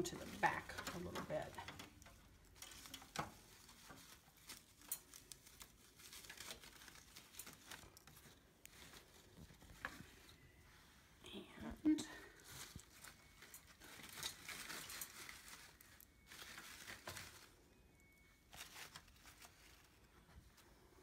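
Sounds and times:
artificial leaves rustling: 0.0s - 21.0s.

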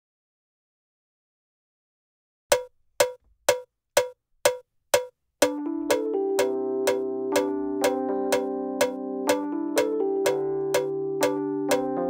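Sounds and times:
cowbell-like percussion hits: 2.5s - 8.4s, 9.3s - 10.9s.

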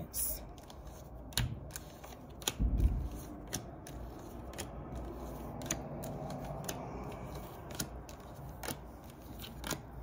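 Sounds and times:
cards being shuffled: 0.5s - 10.0s.

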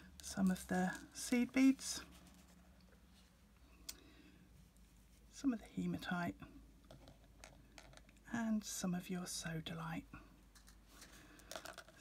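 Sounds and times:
faint clicks of beads: 10.5s - 12.0s.

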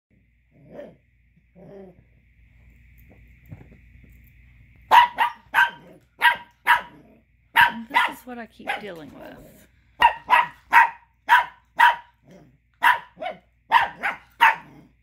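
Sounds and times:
puppy growling: 0.5s - 2.2s, 5.6s - 8.0s, 9.0s - 9.7s, 12.1s - 13.4s, 14.0s - 15.0s
puppy barking sharply: 4.9s - 9.0s, 10.0s - 12.2s, 12.8s - 14.7s.

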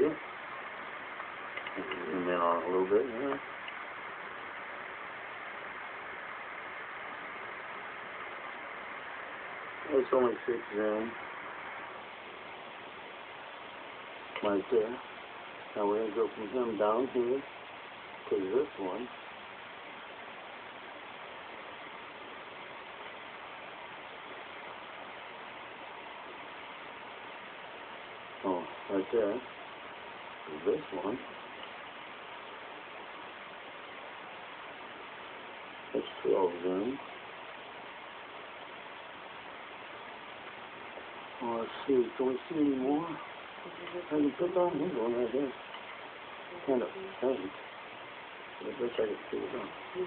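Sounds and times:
outdoor night background hiss: 0.0s - 50.0s.

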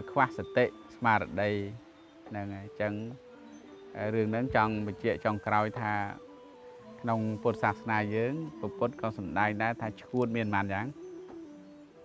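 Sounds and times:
man speaking: 0.0s - 3.2s, 4.0s - 6.2s, 7.0s - 10.9s
soft background music: 0.0s - 12.0s.

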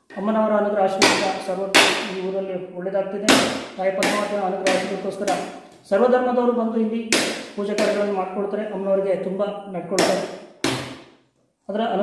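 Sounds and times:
man talking: 0.1s - 10.3s, 11.7s - 12.0s.

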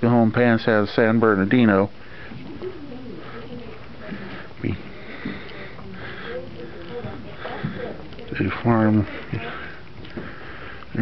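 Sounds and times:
murmur of voices: 1.4s - 11.0s.

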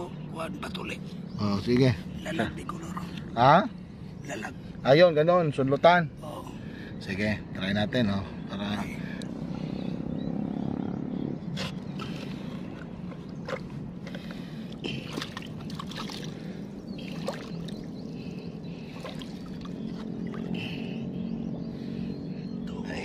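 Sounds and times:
steady low hum: 0.0s - 23.0s
seawater sloshing and splashing: 14.9s - 20.6s.

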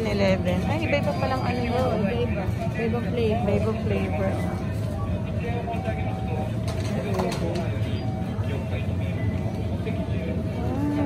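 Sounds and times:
faint voices talking: 0.0s - 11.0s
low machine hum: 0.0s - 11.0s.

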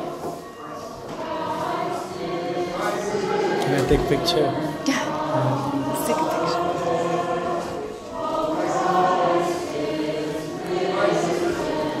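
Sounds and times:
voices chanting a hymn: 0.0s - 12.0s.

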